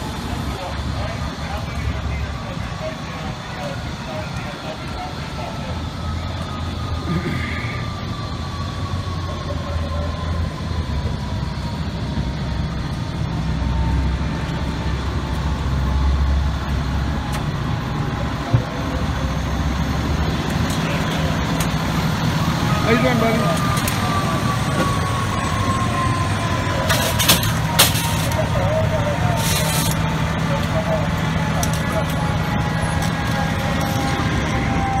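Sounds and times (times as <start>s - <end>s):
diesel engine idling: 0.0s - 35.0s.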